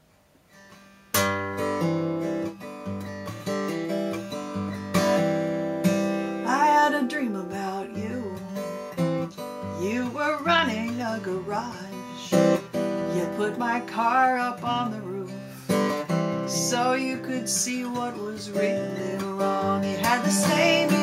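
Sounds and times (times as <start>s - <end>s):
fingerpicked acoustic guitar: 0.0s - 21.0s
woman singing: 6.4s - 15.6s, 16.4s - 21.0s.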